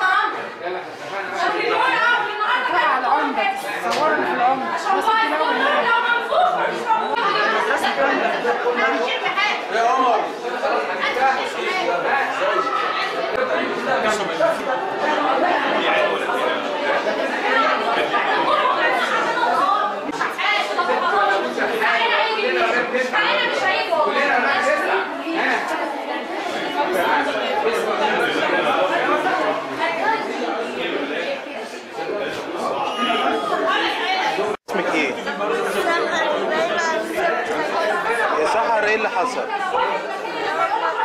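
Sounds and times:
overlapping chatter: 0.0s - 41.0s.

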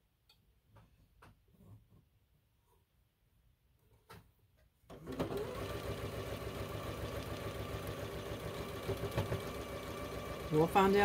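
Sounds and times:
electric sewing machine running: 4.9s - 11.0s.

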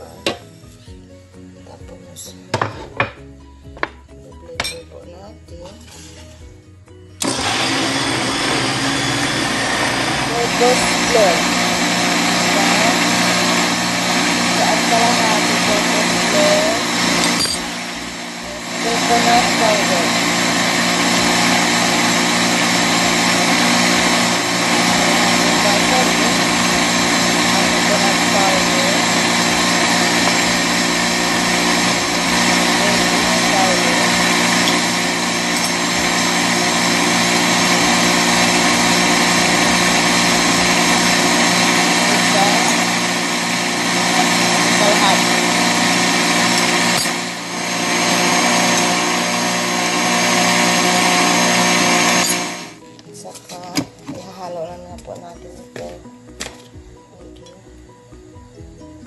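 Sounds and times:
electric mixer running: 7.2s - 52.9s.

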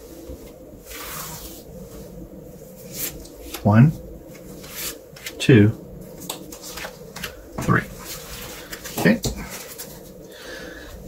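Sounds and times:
cards tapping and sliding: 6.2s - 7.4s.

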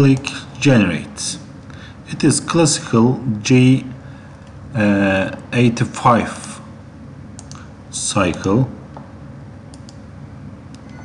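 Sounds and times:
low background hum: 0.0s - 11.0s
computer mouse clicks: 7.4s - 7.7s, 9.7s - 10.0s.

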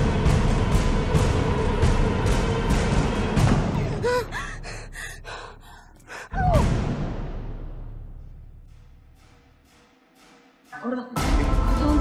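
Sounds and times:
person gasping: 3.9s - 6.6s.

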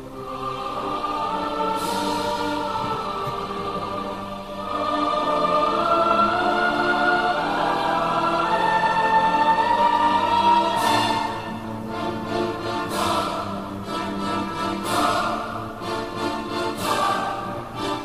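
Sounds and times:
choir singing long notes: 0.0s - 18.0s.

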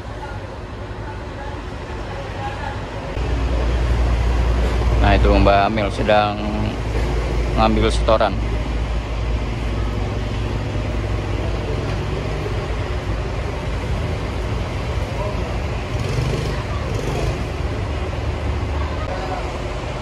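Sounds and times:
diesel bus engine idling: 0.0s - 20.0s
faint voices: 0.0s - 20.0s.

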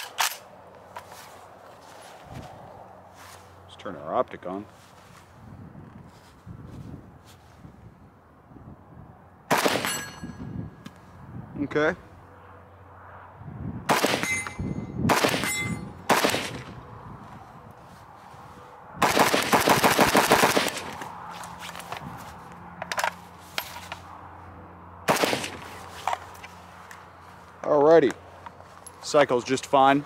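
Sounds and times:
rifle shots: 9.5s - 10.1s, 13.9s - 16.7s, 19.0s - 21.0s, 25.1s - 25.7s.

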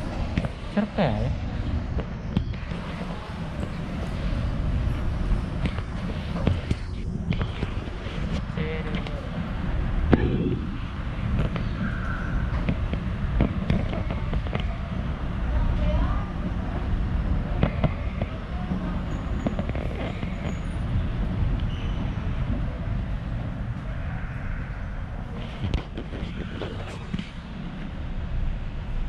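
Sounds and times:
faint voices: 0.0s - 28.0s
escalator rumble: 0.0s - 29.0s.

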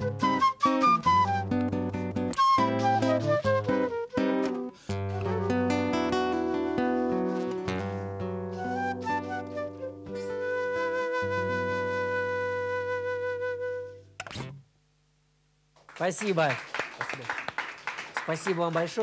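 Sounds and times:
acoustic guitar plucked: 0.0s - 13.0s, 14.2s - 14.7s
flute: 0.0s - 14.1s.

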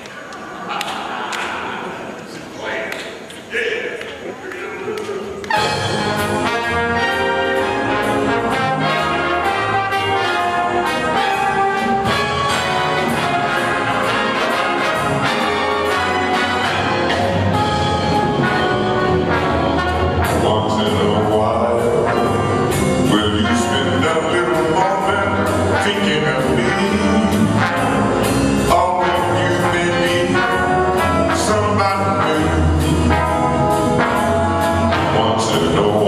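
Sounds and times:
jazz big band brass: 5.4s - 36.0s.

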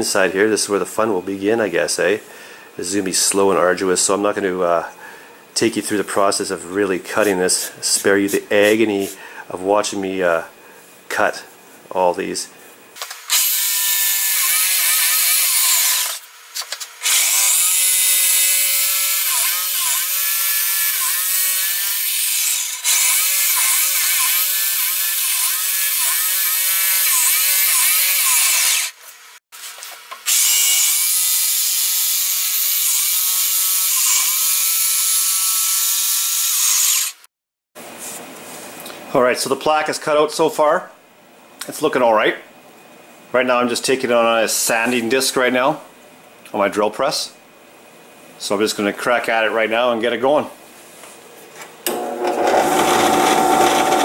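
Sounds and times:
jigsaw cutting board: 28.3s - 28.9s, 51.9s - 54.0s.

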